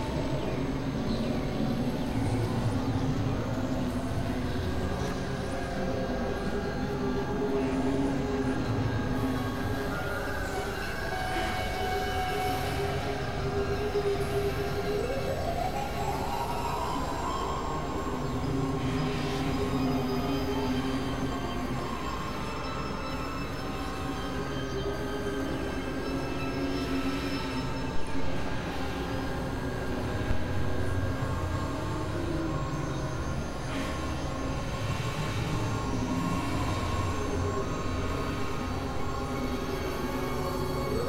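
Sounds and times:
steady drone tones: 0.0s - 41.0s.

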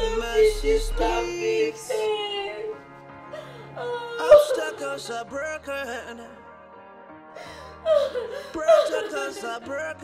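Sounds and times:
drawn-out wailing voice: 0.0s - 2.8s
film music: 0.0s - 10.0s.

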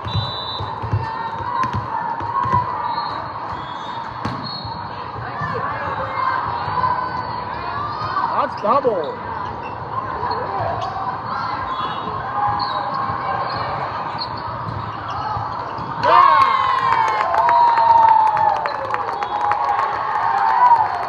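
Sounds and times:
crowd chatter: 0.0s - 17.1s
crowd shouting and cheering: 0.0s - 21.0s
shoe squeaks: 2.8s - 4.8s, 11.6s - 15.8s
clapping: 16.3s - 21.0s.

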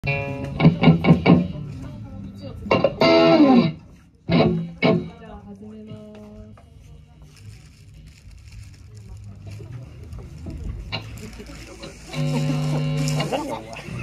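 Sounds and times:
ringing electric guitar notes: 2.7s - 5.2s.

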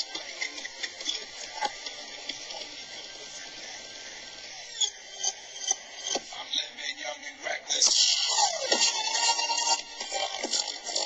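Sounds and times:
thin music in small room: 7.9s - 11.0s.

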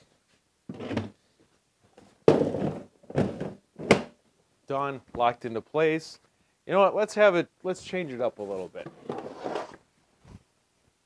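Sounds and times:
plastic tool box thunk: 2.2s - 4.2s
soft handling noise: 7.8s - 10.5s.

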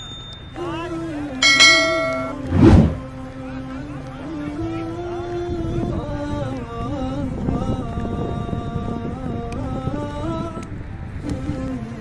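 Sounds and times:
bright notification bell ding: 1.4s - 2.4s.

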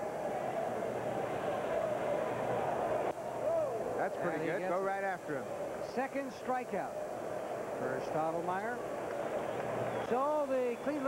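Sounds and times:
stadium crowd murmur: 0.0s - 11.0s.

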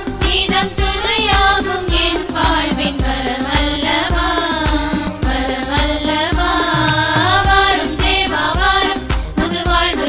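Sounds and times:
percussion steady beat: 0.0s - 10.0s.

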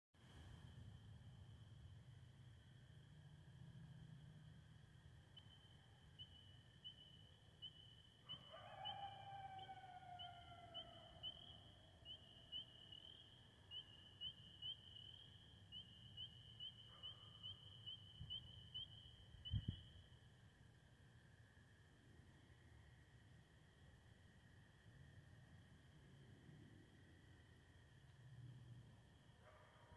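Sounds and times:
distant coyote howl: 5.4s - 20.0s, 29.4s - 29.9s.

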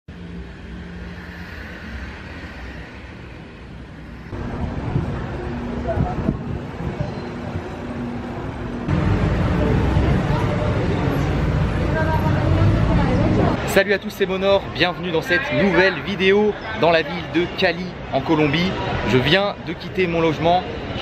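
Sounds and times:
traffic engines and road noise: 0.1s - 21.0s
murmur of voices: 5.0s - 21.0s.

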